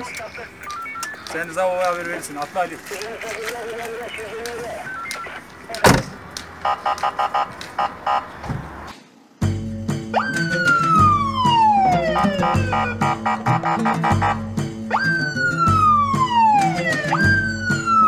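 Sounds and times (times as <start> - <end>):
van door slamming: 5.8 - 6.2, 8.4 - 8.8
background music with a beat: 9.4 - 18.0
falling siren-like tone: 10.2 - 13.0.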